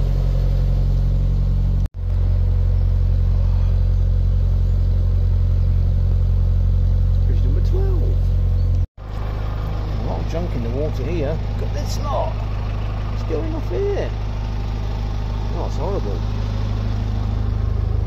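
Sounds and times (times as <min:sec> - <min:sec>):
boat diesel engine droning: 0:00.0 - 0:18.0.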